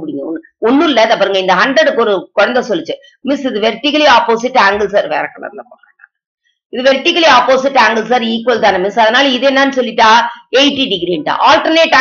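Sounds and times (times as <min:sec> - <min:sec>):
woman talking: 0:00.0 - 0:06.0, 0:06.8 - 0:12.0.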